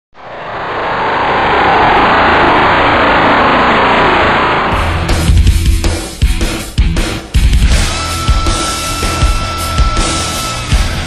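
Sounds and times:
loud rushing noise: 0.2s - 6.4s.

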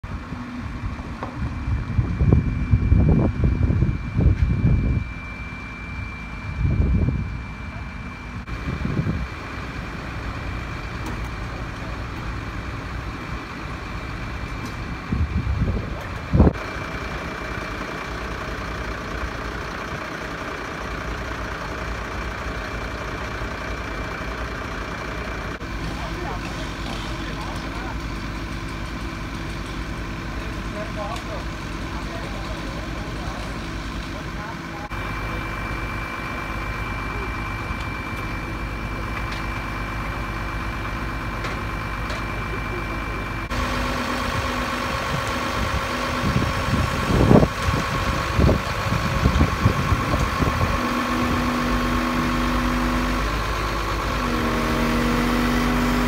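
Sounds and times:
diesel engine idling: 0.0s - 56.0s
wind rumbling on microphone: 0.1s - 5.2s, 6.4s - 7.4s, 8.5s - 9.4s, 15.0s - 16.6s, 44.9s - 51.4s.

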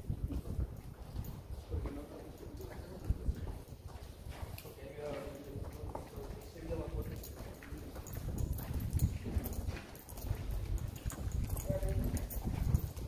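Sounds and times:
footsteps clopping on stone paving: 0.0s - 13.0s.

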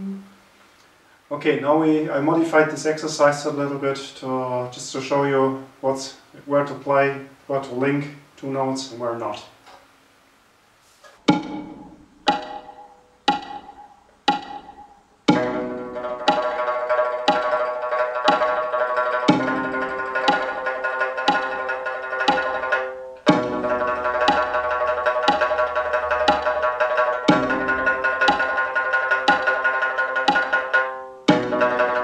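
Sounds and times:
plucked lute notes: 11.2s - 32.0s
metronome click: 11.3s - 18.6s, 19.3s - 32.0s.

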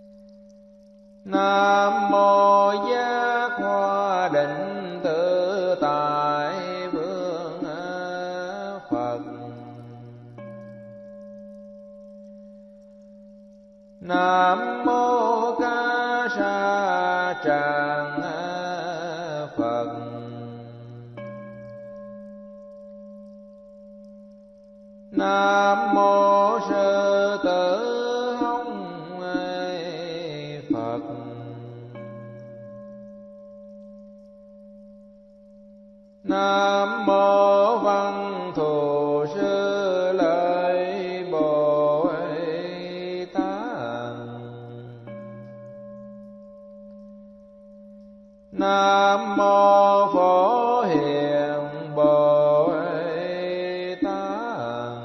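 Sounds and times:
long held tone: 0.0s - 55.0s
melodic chanting with music: 1.2s - 11.3s, 14.0s - 22.2s, 25.0s - 33.0s, 36.2s - 45.7s, 48.5s - 55.0s.

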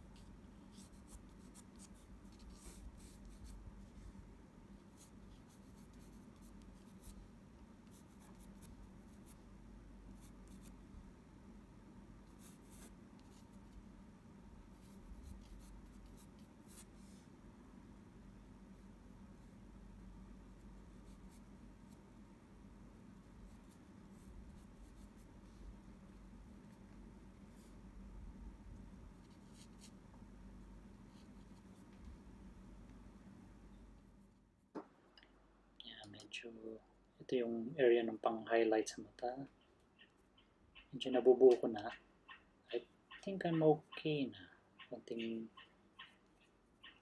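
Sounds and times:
pencil scratching on paper: 0.1s - 4.1s, 4.8s - 7.2s, 7.8s - 9.4s, 10.2s - 10.8s, 12.3s - 13.8s, 14.7s - 17.2s, 23.2s - 25.9s, 29.2s - 30.0s.

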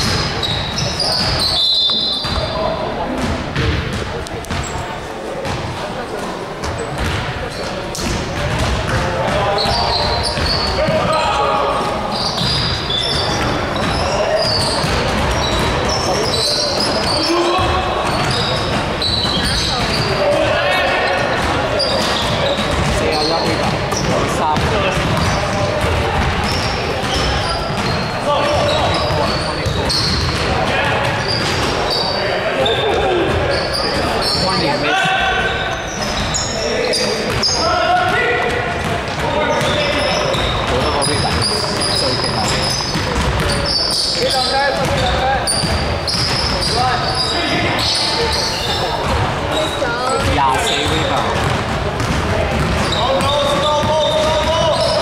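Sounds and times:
basketball bouncing: 0.0s - 4.8s, 5.4s - 5.8s, 6.6s - 32.1s, 37.2s - 47.0s, 49.0s - 55.0s
players shouting and chatting: 0.0s - 55.0s
sneaker squeaks: 0.0s - 55.0s.

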